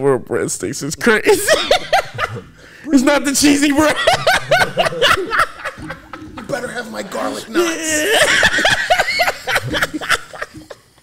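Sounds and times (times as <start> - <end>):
men laughing: 1.2 - 11.0.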